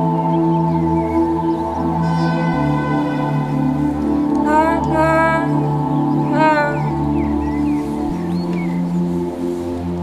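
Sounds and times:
synth chords: 0:00.0 - 0:10.0
wordless sung note: 0:00.3 - 0:09.4.

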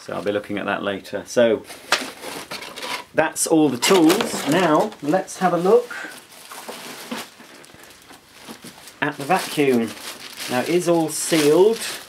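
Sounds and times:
plastic wrap crinkling: 0:01.6 - 0:12.0.

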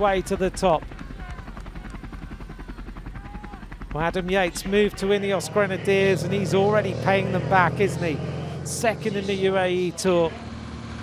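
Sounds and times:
helicopter rotor chopping: 0:00.0 - 0:11.0.

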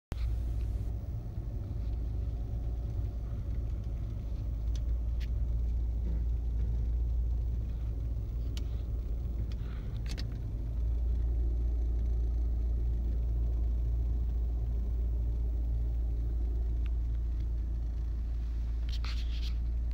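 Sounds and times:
car rumble from inside cabin: 0:00.1 - 0:19.9.

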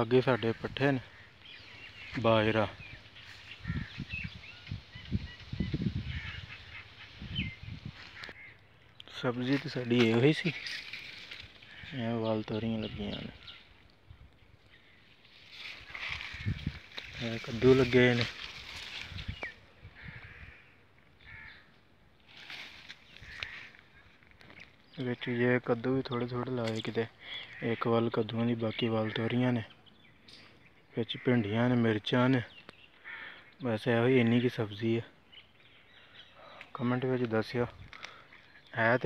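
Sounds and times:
bird chirps: 0:00.0 - 0:20.5, 0:23.0 - 0:31.3
leaves brushing phone: 0:15.4 - 0:19.3.

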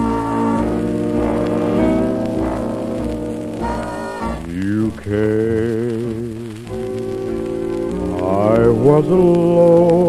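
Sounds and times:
big-band dance music: 0:00.0 - 0:05.1
record surface crackle: 0:00.0 - 0:10.0.

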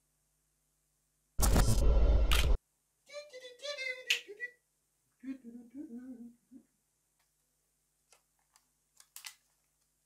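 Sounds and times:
high-pitched wordless voice: 0:03.0 - 0:06.7.

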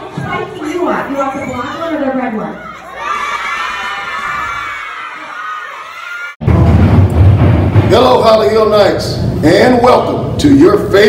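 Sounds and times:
children shouting and cheering: 0:01.4 - 0:06.4.

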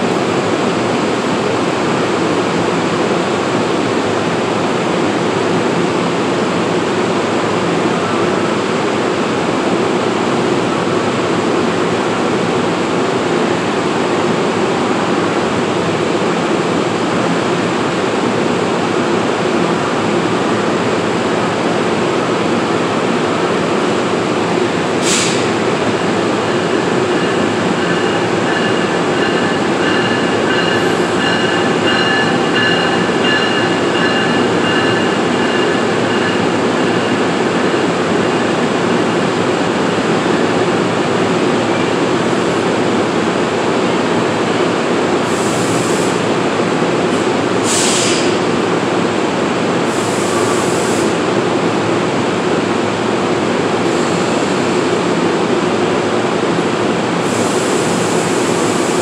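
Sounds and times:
train running noise: 0:00.0 - 0:59.0
sharp hiss: 0:25.0 - 0:25.6, 0:47.6 - 0:48.4.

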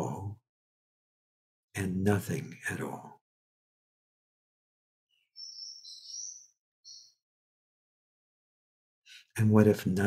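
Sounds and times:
high-pitched chirping: 0:05.2 - 0:07.2.

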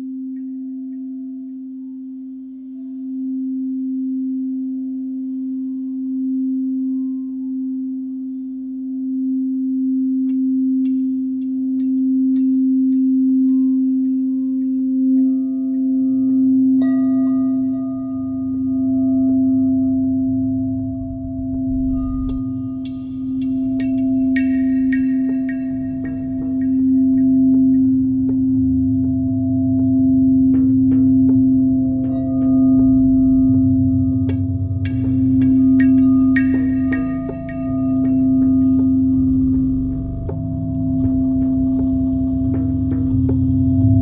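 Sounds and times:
ambient electronic music: 0:00.0 - 0:44.0.

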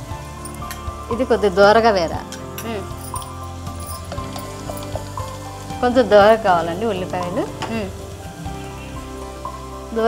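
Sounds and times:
oil sizzling in a pan: 0:00.0 - 0:10.0.

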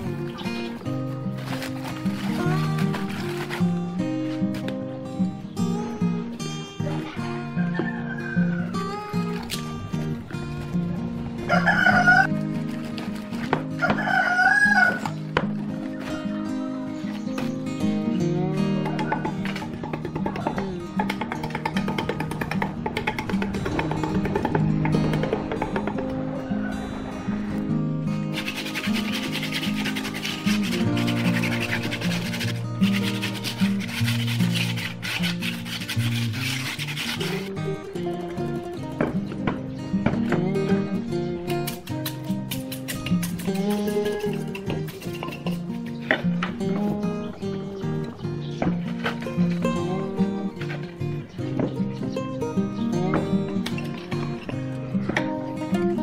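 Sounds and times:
hand rubbing cement pot: 0:00.0 - 0:04.7, 0:28.3 - 0:38.6, 0:41.5 - 0:47.0
acoustic guitar music: 0:00.0 - 0:56.0
rooster crowing: 0:07.6 - 0:09.0, 0:11.4 - 0:12.3, 0:13.8 - 0:15.1, 0:15.9 - 0:17.2, 0:25.7 - 0:27.7.

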